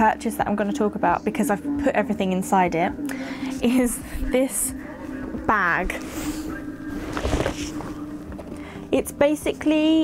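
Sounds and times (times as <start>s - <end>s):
suitcase fabric rustling: 5.8s - 8.5s.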